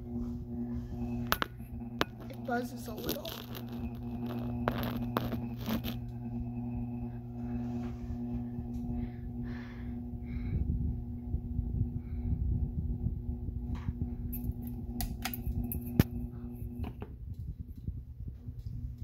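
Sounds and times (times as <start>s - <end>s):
ceiling fan motor hum: 0.0s - 19.0s.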